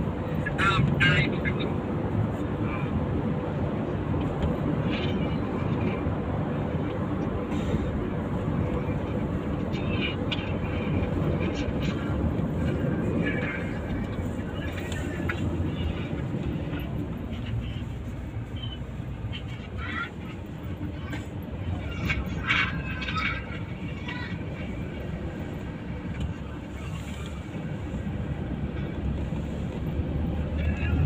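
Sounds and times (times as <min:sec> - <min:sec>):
car road and engine rumble: 0:00.0 - 0:31.0.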